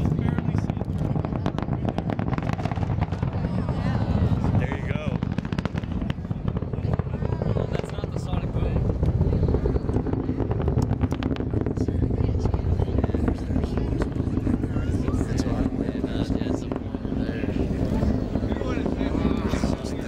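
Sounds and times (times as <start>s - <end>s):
deep rocket launch rumble: 0.0s - 20.0s
sharp crackling: 0.0s - 20.0s.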